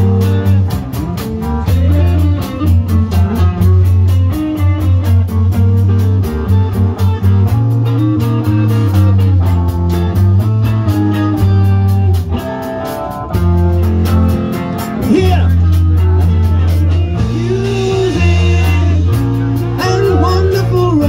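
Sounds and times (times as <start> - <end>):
bass line: 0.0 - 21.0
electric guitar notes: 0.0 - 21.0.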